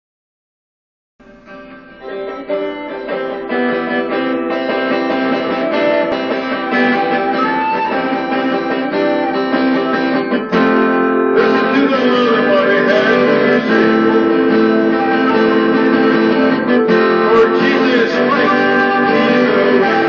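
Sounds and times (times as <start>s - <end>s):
acoustic guitar music: 1.2s - 20.0s.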